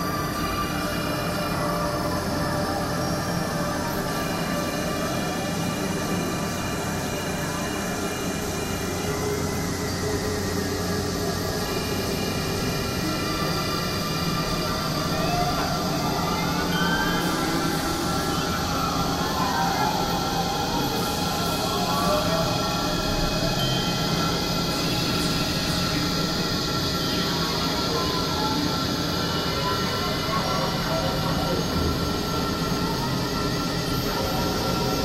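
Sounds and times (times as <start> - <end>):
synthesizer drone: 0.0 - 35.0.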